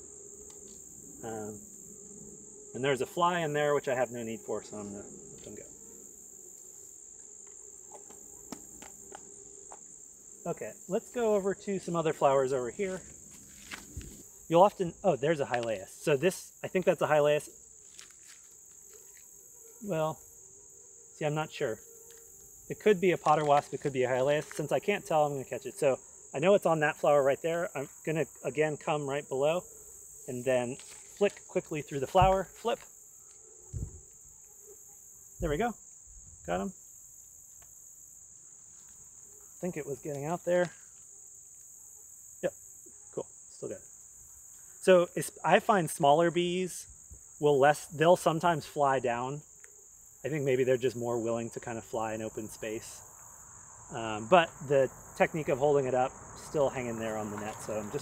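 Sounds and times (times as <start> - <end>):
crickets chirping: 0.0 - 58.0
high-pitched insect chorus: 0.0 - 58.0.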